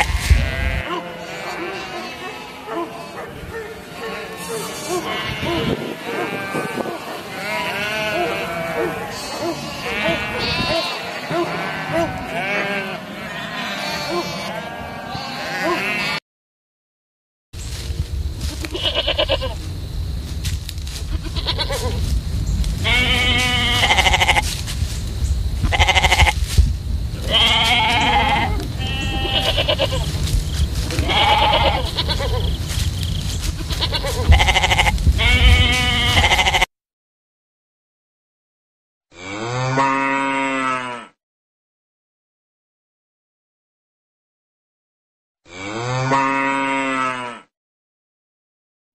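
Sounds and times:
sheep bleating: 0.0s - 16.2s, 18.5s - 19.6s, 21.0s - 22.0s, 22.8s - 24.6s, 25.6s - 26.4s, 27.2s - 36.7s
steady low rumble: 17.6s - 36.5s.

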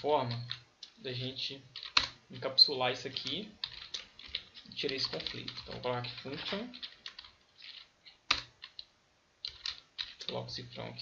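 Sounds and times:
computer keyboard typing: 0.3s - 1.0s, 1.7s - 10.4s.

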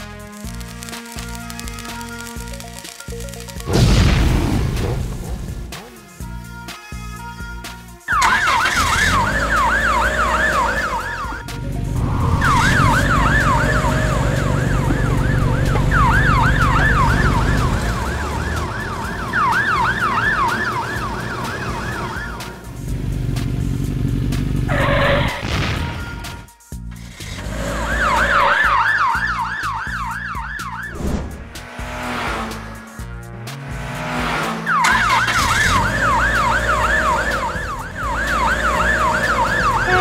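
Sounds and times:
ambulance siren yelping: 8.1s - 22.7s, 24.7s - 26.5s, 27.8s - 31.0s, 34.7s - 40.0s.

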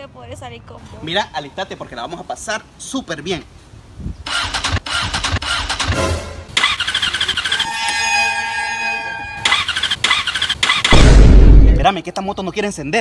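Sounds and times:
motorcycle starter cranking: 4.3s - 7.8s, 9.4s - 10.9s
high squealing whine: 6.6s - 11.0s.

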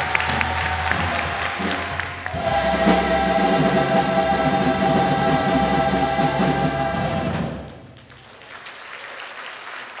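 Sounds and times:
crowd applauding: 0.0s - 3.0s, 7.9s - 10.0s.

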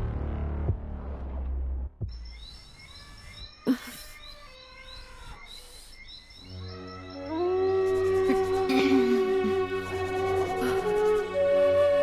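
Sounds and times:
music: 0.0s - 2.5s, 6.4s - 12.0s.

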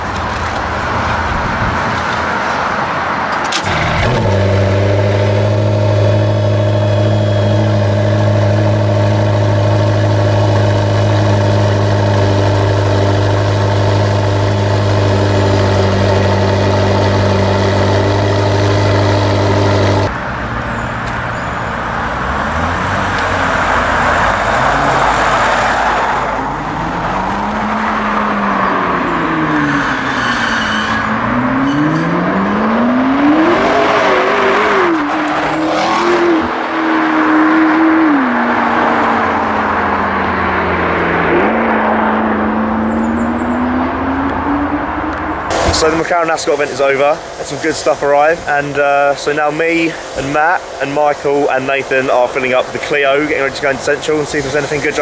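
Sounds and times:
car engine idling and revving: 0.0s - 55.0s.

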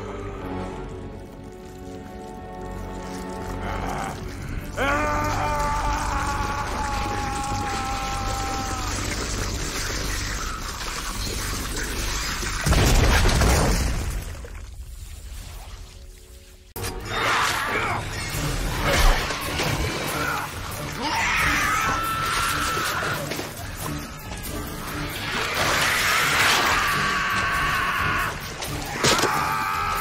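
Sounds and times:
dramatic film score: 0.0s - 30.0s
long pitched wail: 3.6s - 9.2s, 20.1s - 23.3s, 25.6s - 30.0s.

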